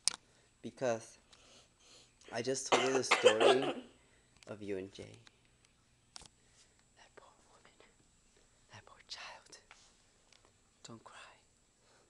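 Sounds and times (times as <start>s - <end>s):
faint whispering: 7.0s - 8.0s, 8.7s - 9.8s, 10.8s - 11.5s.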